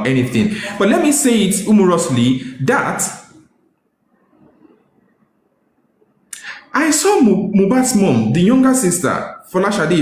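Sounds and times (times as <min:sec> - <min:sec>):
person speaking: 0:00.0 - 0:03.5, 0:06.3 - 0:10.0.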